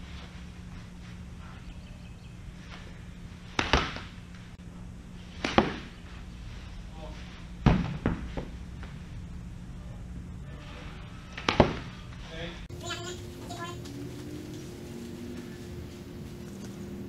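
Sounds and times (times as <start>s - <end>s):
steady low hum: 0.0s - 17.0s
baseballs smacking into catcher's mitt: 3.5s - 4.1s, 5.4s - 5.9s.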